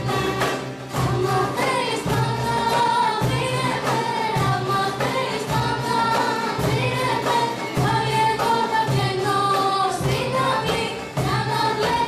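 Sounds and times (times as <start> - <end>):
hand percussion beat: 0.0 - 12.0
people singing in unison: 0.0 - 12.0
plucked lutes: 0.0 - 12.0.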